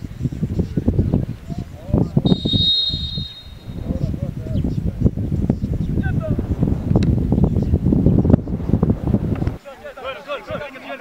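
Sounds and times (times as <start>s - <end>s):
referee's whistle blast: 2.3s - 3.8s
chatter of voices: 9.6s - 11.0s.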